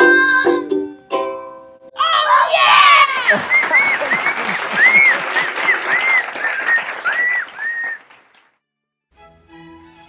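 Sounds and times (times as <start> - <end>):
whooping cheers: 2.0 - 8.3
applause: 3.1 - 8.6.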